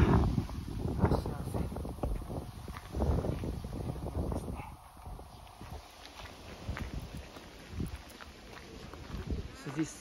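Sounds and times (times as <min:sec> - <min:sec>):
footsteps on gravel: 0:00.3 - 0:10.0.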